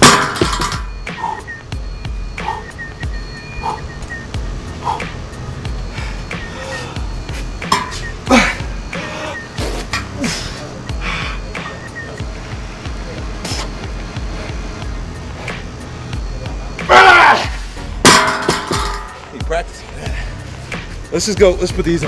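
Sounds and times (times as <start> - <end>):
background music: 0.0 - 22.0
person shouting strained: 16.8 - 17.6.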